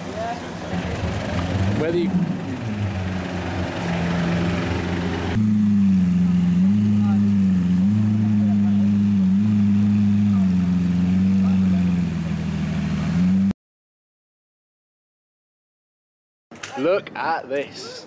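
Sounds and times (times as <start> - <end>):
car engine idling: 0.0 - 13.4.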